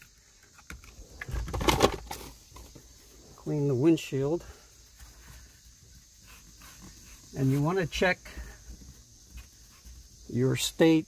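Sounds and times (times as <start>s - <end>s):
rustling: 0.0s - 10.8s.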